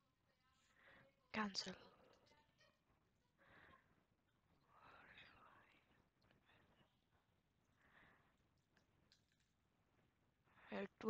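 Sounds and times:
faint whisper: 3.4 - 8.4.

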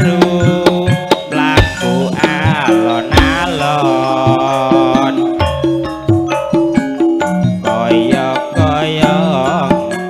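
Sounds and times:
hand drum strokes: 0.0 - 8.3
metallophone tones: 0.0 - 10.0.

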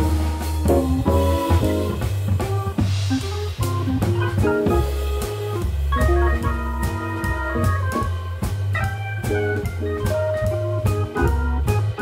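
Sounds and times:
drums and cymbals: 0.0 - 12.0
organ bass line: 0.0 - 12.0
organ chords: 0.0 - 12.0.

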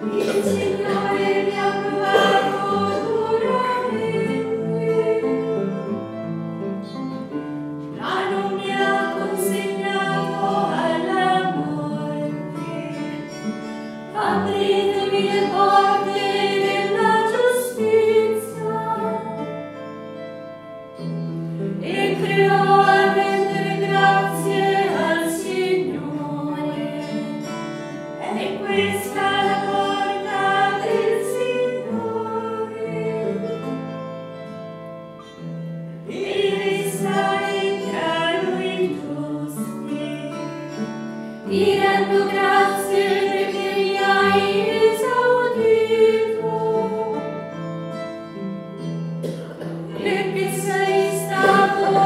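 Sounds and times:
choir of nuns singing a hymn: 0.0 - 6.2, 7.9 - 13.3, 14.1 - 19.8, 21.7 - 34.0, 36.1 - 48.4, 49.2 - 52.0.

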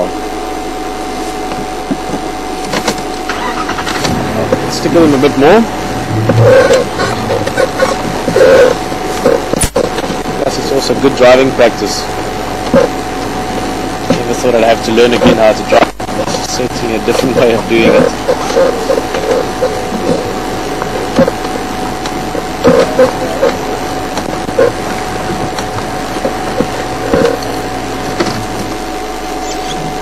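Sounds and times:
vehicle engine running: 1.6 - 30.0
short indistinct sounds: 5.9 - 8.9.

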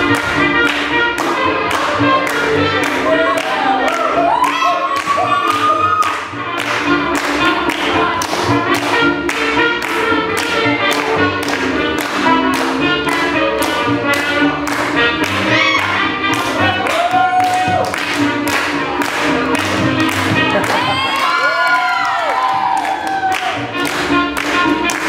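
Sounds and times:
swing jazz music: 0.0 - 21.7, 22.5 - 25.0.

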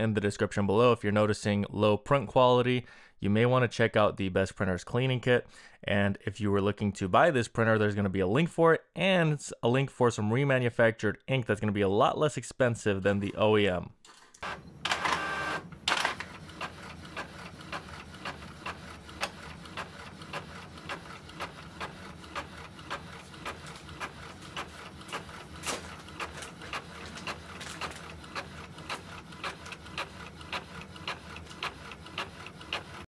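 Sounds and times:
inkjet printer whirring: 14.4 - 33.0.

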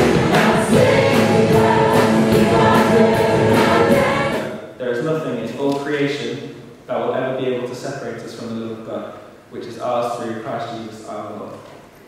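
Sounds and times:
congregation singing a hymn: 0.0 - 4.6
instrumental accompaniment: 0.0 - 4.6.

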